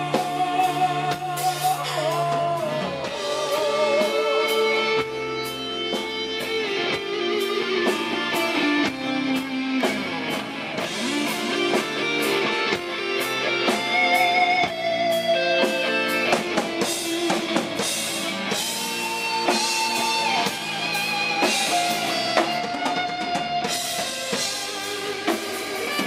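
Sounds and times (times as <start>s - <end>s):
bass guitar: 0.0s - 26.0s
drums: 0.0s - 26.0s
electric guitar lead: 0.0s - 26.0s.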